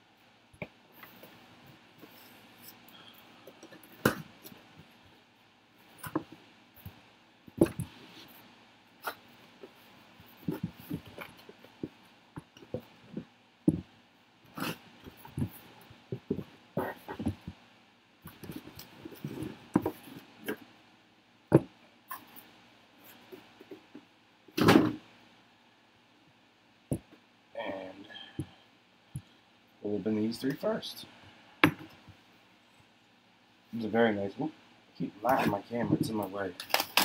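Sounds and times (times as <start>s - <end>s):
cardboard boxes knocking and rustling: 10.4s - 12.0s, 15.2s - 17.6s.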